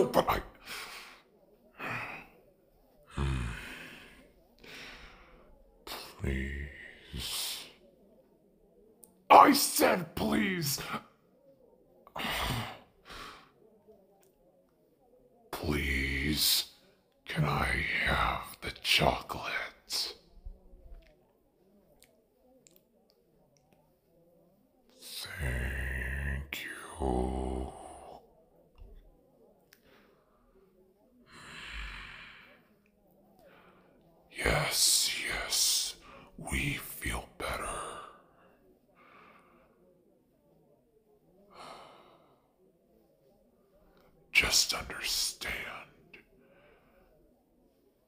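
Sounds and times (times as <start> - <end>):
man sighing: 3.1 - 5.3.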